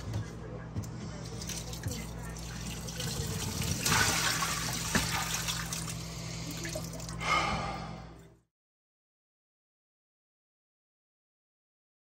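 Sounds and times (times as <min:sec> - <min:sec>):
water splashing into steel sink: 0:01.4 - 0:07.2.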